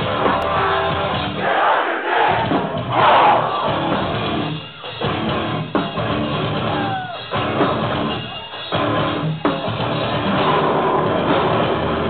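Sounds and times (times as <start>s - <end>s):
band playing loudly: 0.0s - 12.0s
concert crowd shouting and cheering: 0.0s - 12.0s.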